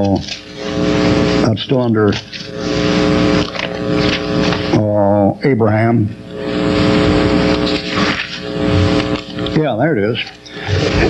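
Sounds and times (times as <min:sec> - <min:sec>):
steady electrical hum: 0:00.0 - 0:11.0
paper pages rustling: 0:02.1 - 0:02.6, 0:03.4 - 0:04.6, 0:07.6 - 0:08.4.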